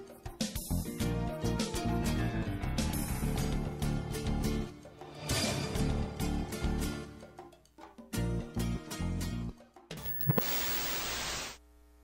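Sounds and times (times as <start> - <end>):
television static hiss: 10.0 - 12.0
faint electrical hum: 10.1 - 12.0.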